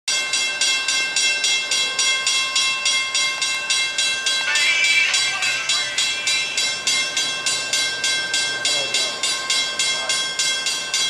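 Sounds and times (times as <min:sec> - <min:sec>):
railroad crossing bell ringing: 0:00.1 - 0:11.0.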